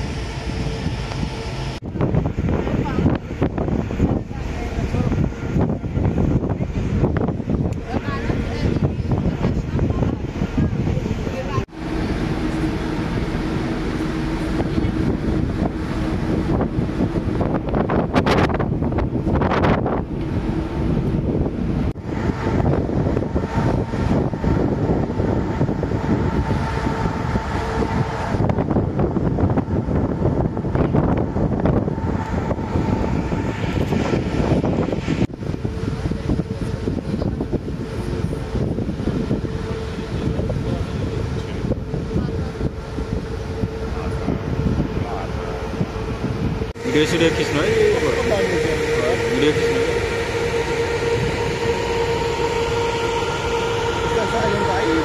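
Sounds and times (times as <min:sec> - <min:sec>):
faint hum: 0:00.0 - 0:55.0
ship engine low rumble: 0:00.0 - 0:55.0
wind buffeting microphone: 0:00.0 - 0:55.0.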